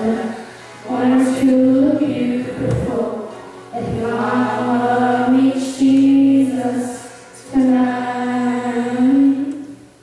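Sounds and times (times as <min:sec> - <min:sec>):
choir singing held notes: 0:00.0 - 0:09.9.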